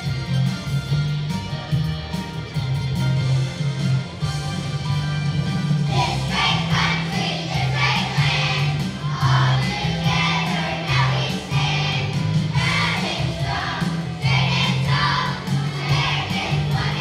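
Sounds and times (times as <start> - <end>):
instrumental accompaniment: 0.0 - 17.0
children's choir singing: 5.8 - 17.0.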